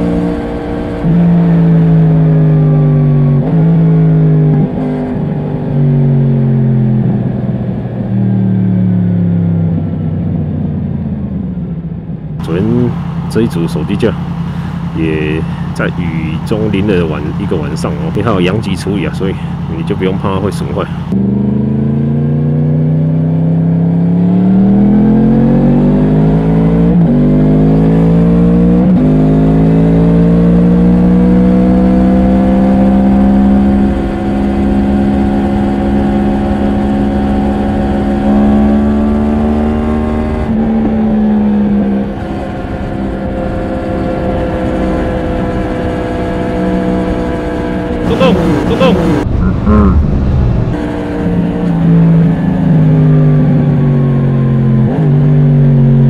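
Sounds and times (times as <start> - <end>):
motorcycle engine accelerating: 0.0 - 56.0
rush of noise: 48.0 - 51.2.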